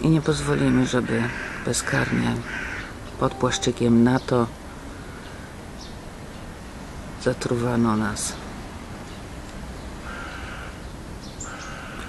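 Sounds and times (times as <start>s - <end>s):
bird cawing: 0.8s - 3.0s, 10.0s - 12.0s.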